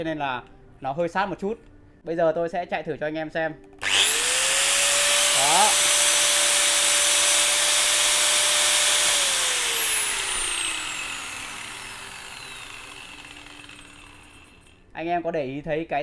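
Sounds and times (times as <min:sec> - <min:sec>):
angle grinder whining: 0:03.8 - 0:14.8.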